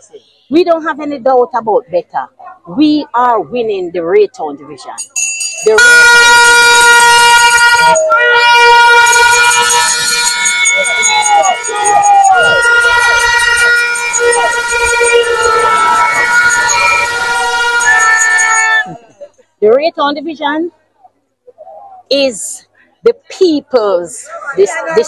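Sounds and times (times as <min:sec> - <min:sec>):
crowd voices: 0:00.0 - 0:25.0
handheld horns blasting: 0:05.6 - 0:19.0.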